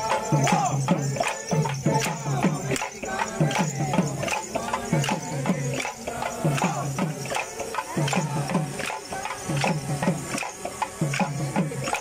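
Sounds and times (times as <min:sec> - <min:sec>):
low pitched percussion: 0:00.0 - 0:12.0.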